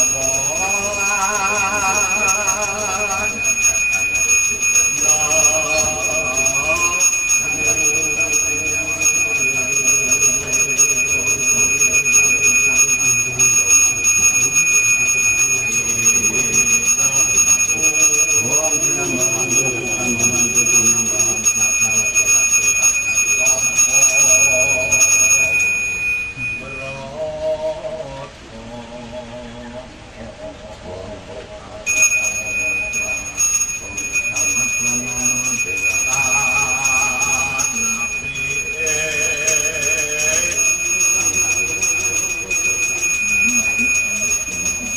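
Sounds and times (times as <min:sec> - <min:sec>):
person chanting: 0:00.0 - 0:13.6, 0:26.4 - 0:33.4, 0:34.1 - 0:41.8
hand bell ringing: 0:00.0 - 0:26.9, 0:31.9 - 0:44.9.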